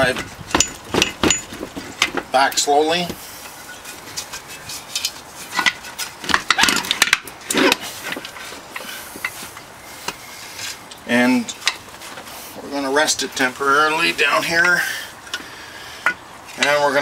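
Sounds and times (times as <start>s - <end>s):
metal clunks and scraping: 0.0s - 10.9s.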